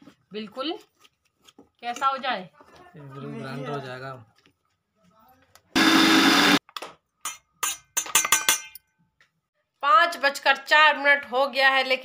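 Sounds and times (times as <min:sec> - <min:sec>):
mixer grinder grinding: 0:05.8 - 0:06.6.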